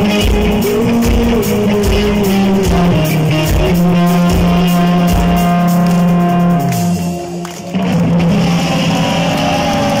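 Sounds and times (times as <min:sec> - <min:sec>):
rolling drums and cymbals: 0:00.0 - 0:07.4
bass guitar: 0:00.0 - 0:10.0
distorted electric guitars: 0:00.0 - 0:10.0.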